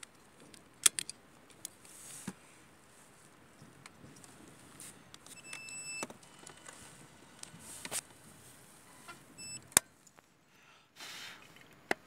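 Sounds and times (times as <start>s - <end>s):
short electronic beep: 9.0s - 9.6s.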